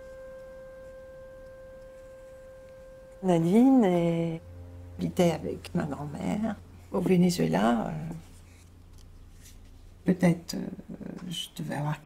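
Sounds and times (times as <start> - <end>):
soft held musical note: 0.0 - 8.6.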